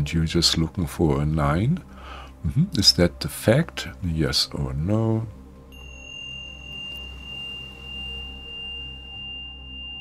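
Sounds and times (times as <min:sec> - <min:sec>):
low drone: 0:04.6 - 0:10.0
high pure ringing tone: 0:05.6 - 0:10.0
faint higher tone: 0:05.7 - 0:10.0.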